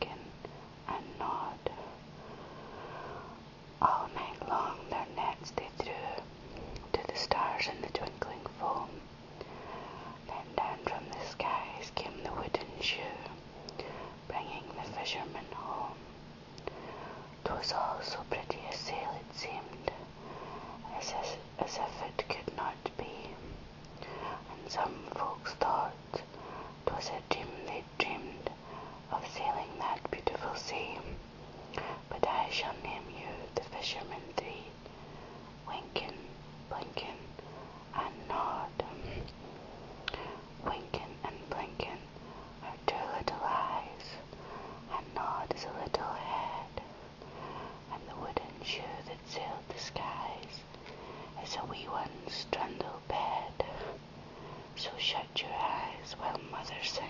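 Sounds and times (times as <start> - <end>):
person whispering: 0.0 - 2.0, 3.8 - 9.0, 10.1 - 16.0, 17.4 - 20.1, 20.8 - 23.4, 24.0 - 31.2, 31.8 - 34.8, 35.6 - 39.4, 40.1 - 44.3, 44.9 - 47.0, 47.8 - 50.7, 51.4 - 54.0, 54.8 - 57.0.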